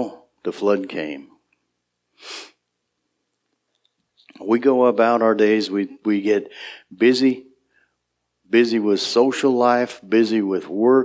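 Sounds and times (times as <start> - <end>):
man sniffing sharply: 2.1 - 2.6.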